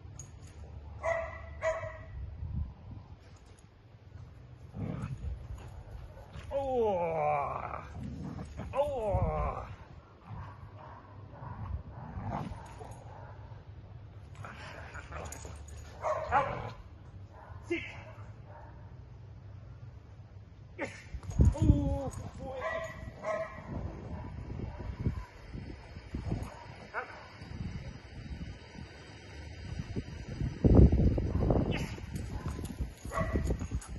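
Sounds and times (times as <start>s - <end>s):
scuffling and vocal noises: 4.7s - 10.4s.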